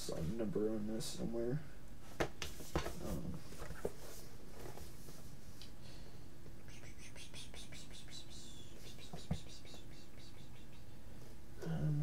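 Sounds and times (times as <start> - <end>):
low room hum: 0.0 - 12.0
man whispering: 6.6 - 10.9, 11.6 - 12.0.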